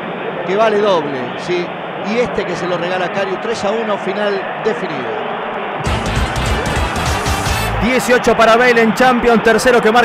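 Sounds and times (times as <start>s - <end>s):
music with heavy bass: 5.8s - 8.0s.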